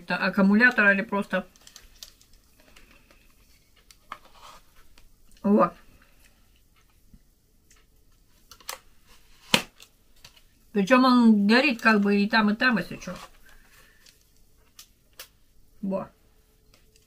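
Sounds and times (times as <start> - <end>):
plastic lantern handling: 1.4 - 5.1.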